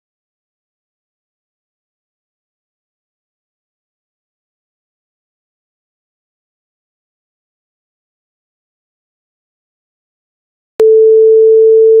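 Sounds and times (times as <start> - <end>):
steady sine test tone: 10.8 - 12.0.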